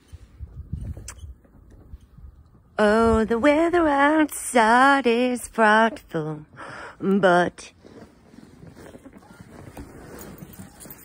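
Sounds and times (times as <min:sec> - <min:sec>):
faint rustling: 0:07.6 - 0:11.0
footsteps in snow: 0:07.7 - 0:11.0.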